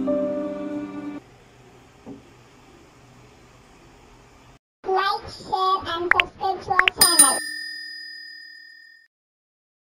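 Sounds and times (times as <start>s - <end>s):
bell ding: 7.0s - 9.1s.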